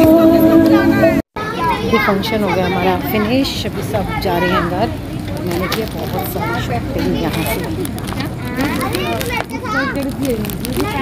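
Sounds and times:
children talking: 0.0 - 11.0.

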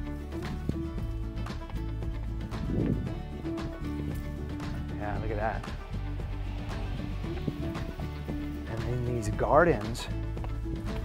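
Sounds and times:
background music with light beat: 0.0 - 11.0.

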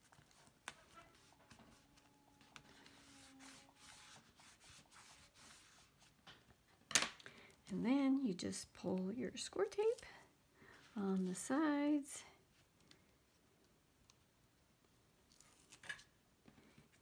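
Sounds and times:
bone folder rubbing tape: 0.0 - 6.1.

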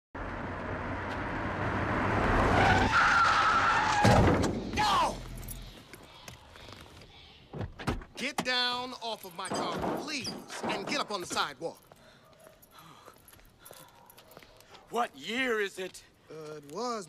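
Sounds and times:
car approaching fast: 0.2 - 3.4
tires squealing: 0.4 - 5.2.

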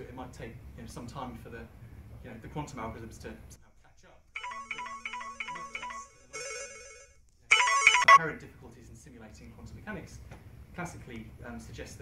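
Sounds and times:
electronic phone ringtone: 4.4 - 8.2.

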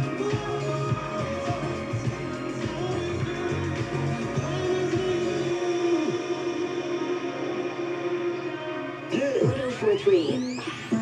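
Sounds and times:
low beat: 0.0 - 6.3.

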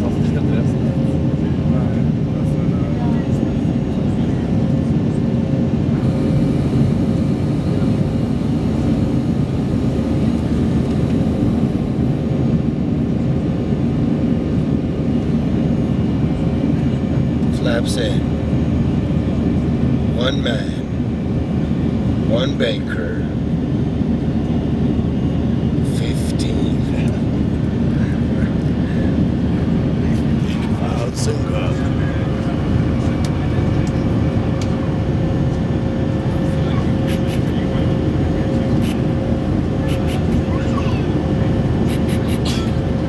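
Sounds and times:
jet cabin engine rumble: 0.0 - 43.0.

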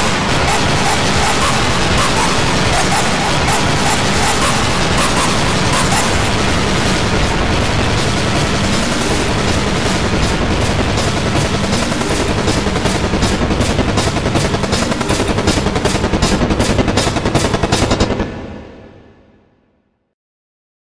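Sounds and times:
rapid stuttering rattle: 0.0 - 18.7
harsh distorted noise: 0.0 - 19.4.

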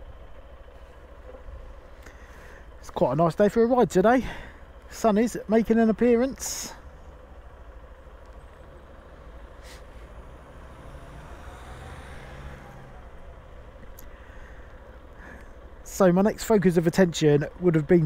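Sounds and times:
motorcycle engine idling: 0.0 - 10.6, 12.6 - 18.0.

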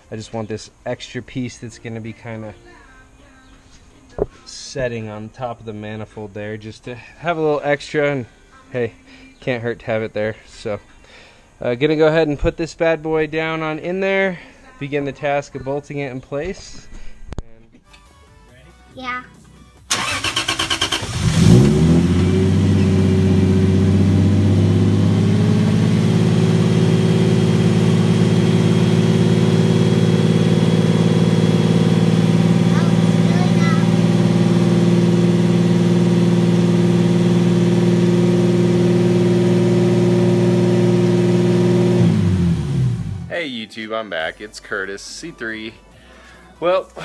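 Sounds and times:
engine starter cranking: 19.9 - 22.2
car engine idling: 19.9 - 43.3.

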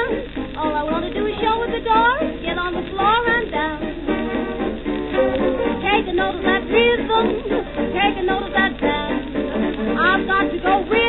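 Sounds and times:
woman singing: 0.0 - 4.0, 5.7 - 11.0
jazz dance orchestra playing: 0.0 - 11.0.

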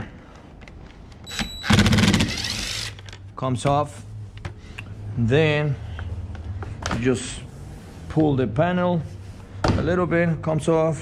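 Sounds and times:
impact driver whining and hammering: 1.3 - 3.0.

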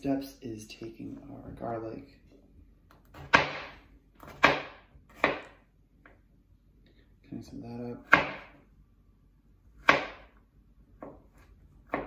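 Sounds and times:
knife chopping on wooden board: 3.0 - 5.6, 8.0 - 8.6, 9.8 - 10.4, 11.0 - 12.0.

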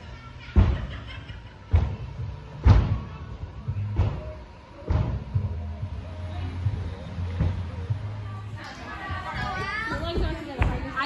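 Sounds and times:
girls talking and calling out: 8.4 - 11.0.

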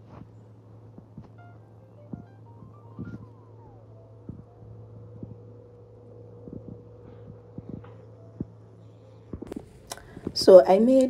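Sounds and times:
steady low hum: 0.0 - 11.0
background music: 1.0 - 11.0.

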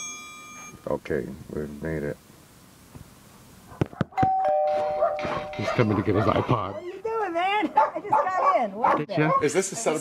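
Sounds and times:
two-tone doorbell chime: 0.0 - 0.8, 4.2 - 5.9.

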